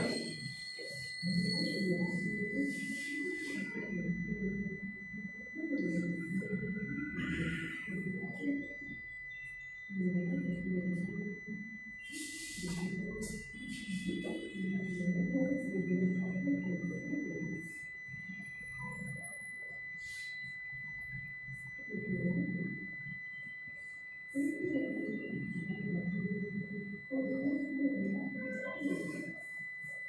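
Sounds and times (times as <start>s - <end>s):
indistinct voices talking: 0.0s - 30.0s
steady high-pitched whine: 0.0s - 30.0s.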